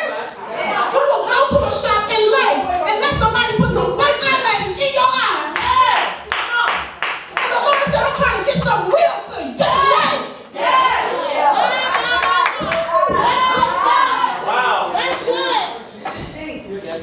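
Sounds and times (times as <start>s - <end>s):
congregation calling back: 0.0s - 16.6s
hands clapping: 5.5s - 9.0s, 11.9s - 13.7s
preacher shouting: 7.4s - 15.8s.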